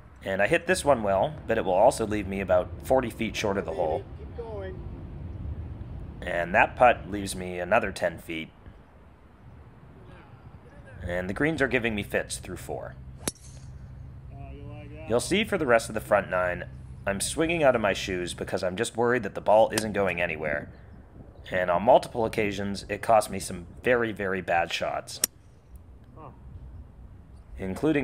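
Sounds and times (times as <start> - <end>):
golf driver striking ball: 13.2 - 13.9.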